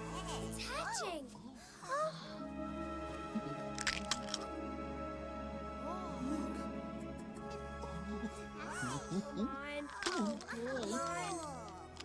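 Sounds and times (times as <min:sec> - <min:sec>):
film score music: 0:00.0 - 0:12.0
egg shell cracking: 0:03.7 - 0:04.5, 0:09.8 - 0:12.0.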